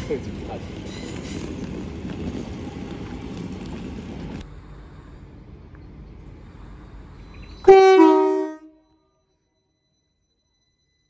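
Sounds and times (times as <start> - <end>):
low rumble of standing train: 0.0 - 9.4
two-tone train horn: 7.6 - 9.0.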